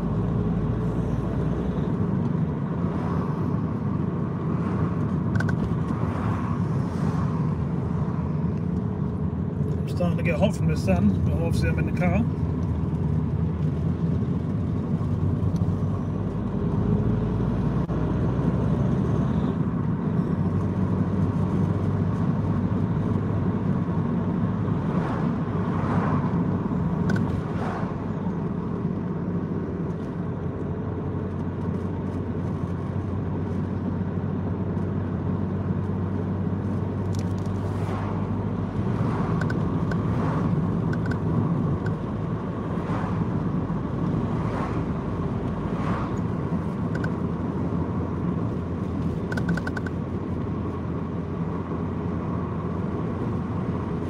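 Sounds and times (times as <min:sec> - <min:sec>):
car engine and tyre rumble: 0:00.0 - 0:54.0.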